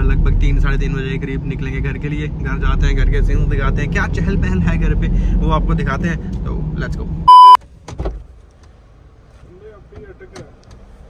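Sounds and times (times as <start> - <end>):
loud electronic beep: 7.3 - 7.6
car door opening clicks and knocks: 7.6 - 8.7.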